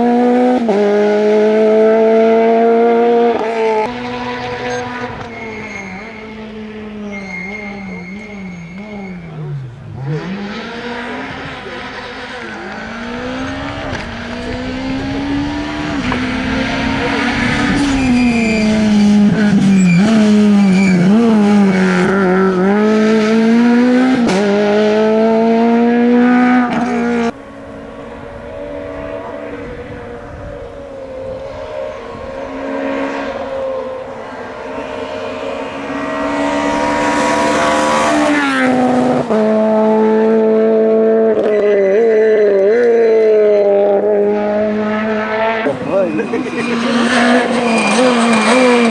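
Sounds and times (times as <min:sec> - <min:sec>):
rally car engine revving hard: 0:00.0 - 0:48.9.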